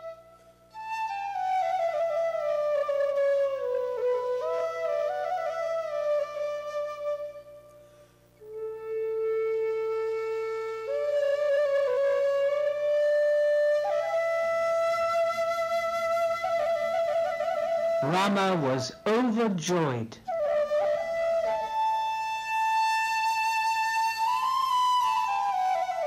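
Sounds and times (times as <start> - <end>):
flute playing slow melody: 0.0 - 18.8, 20.2 - 26.0.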